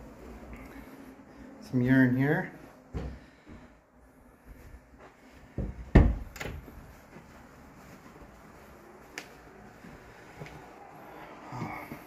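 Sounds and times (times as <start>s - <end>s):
dull knocks and thumps: 5.5s - 6.7s.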